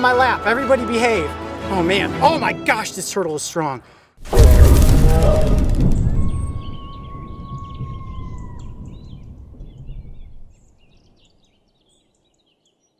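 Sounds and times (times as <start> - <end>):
low rumble: 4.3 - 10.6
birds chirping: 5.2 - 12.9.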